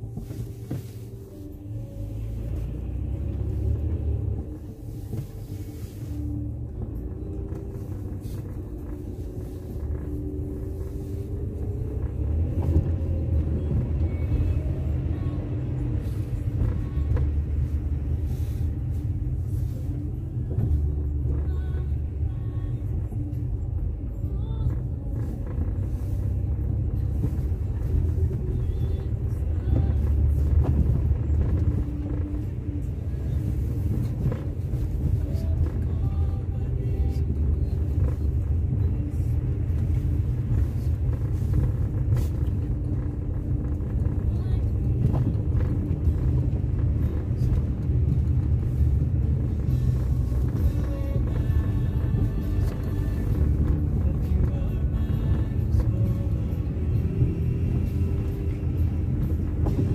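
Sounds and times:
car driving on snow: 0.0s - 59.9s.

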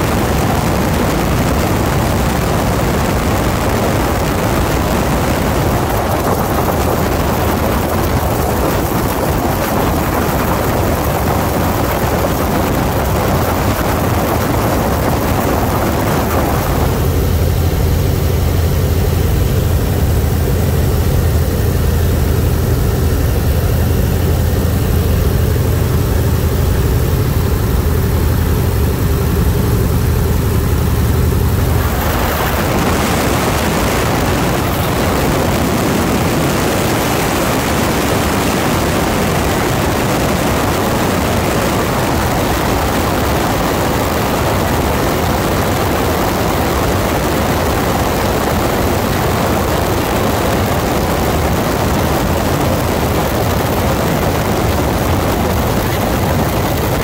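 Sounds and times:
loud wind rush: 0.0s - 57.0s
radial engine and propeller droning: 0.0s - 57.0s.

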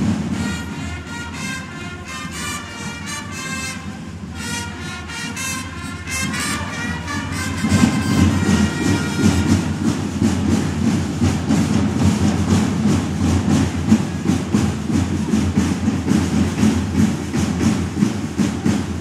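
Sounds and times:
parade drums beating: 0.0s - 19.0s
brass fanfare note: 0.3s - 9.7s.

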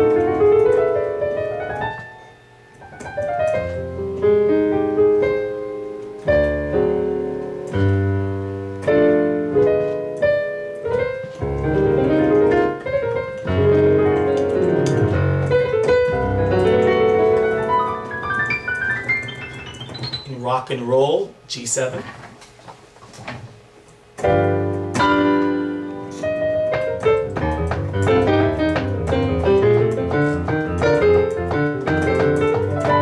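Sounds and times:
piano chords and melodic runs: 0.0s - 21.9s, 22.6s - 33.0s.

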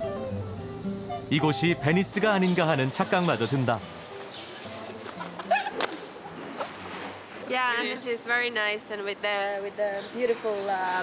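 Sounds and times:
women laughing: 5.0s - 6.4s
sharp crack: 5.0s - 7.2s.

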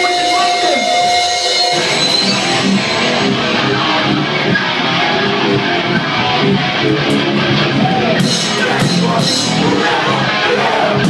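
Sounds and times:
steady high tone: 0.0s - 7.1s
hardcore band playing live: 0.0s - 11.0s.

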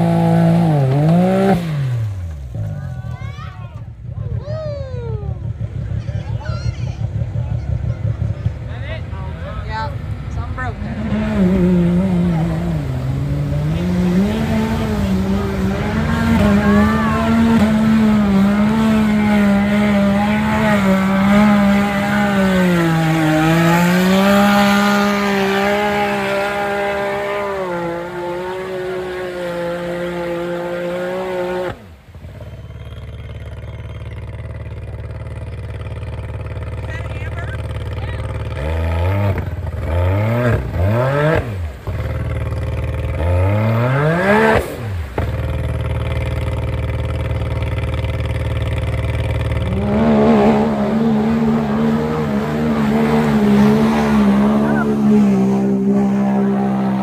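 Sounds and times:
off-road vehicle engine revving: 0.0s - 57.0s.

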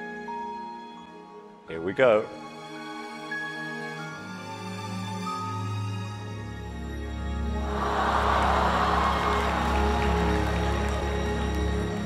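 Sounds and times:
dramatic background music: 2.3s - 12.0s
audience gasping and cheering: 7.6s - 12.0s.

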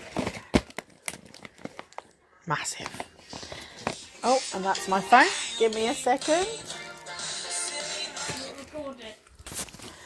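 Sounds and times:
snack packaging crinkling: 0.0s - 4.1s, 5.8s - 10.0s.

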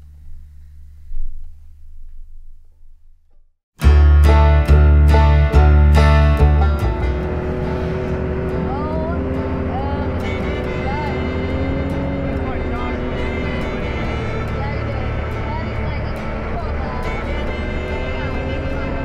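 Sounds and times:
vehicle engine drone: 3.8s - 19.0s.

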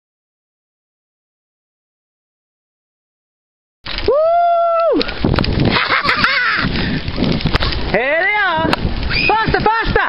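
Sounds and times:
wind rumble on microphone: 3.9s - 10.0s
voice: 7.9s - 10.0s.

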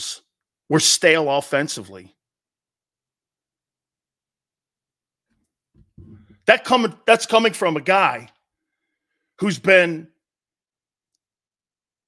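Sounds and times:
man speaking: 0.0s - 2.2s, 6.4s - 8.4s, 9.4s - 10.2s.

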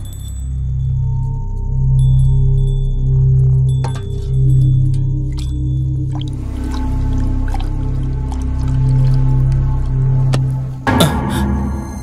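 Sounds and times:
deep electronic drone: 0.0s - 12.0s.

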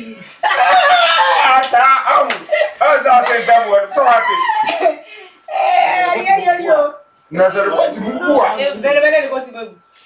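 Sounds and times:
women laughing and exclaiming: 0.2s - 2.9s, 3.8s - 6.6s.

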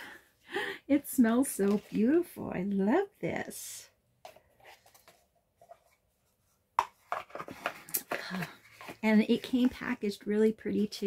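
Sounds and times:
cardboard rustling and scraping: 4.3s - 10.0s.

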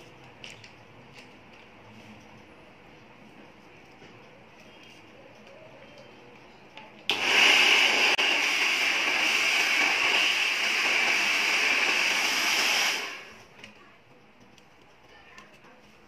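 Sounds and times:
hot-air brush fan whirring: 0.0s - 15.8s.

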